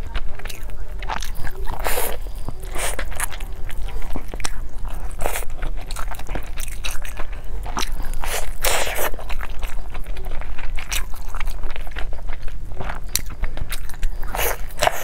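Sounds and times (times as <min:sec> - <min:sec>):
crunchy food being chewed: 0:00.0 - 0:15.0.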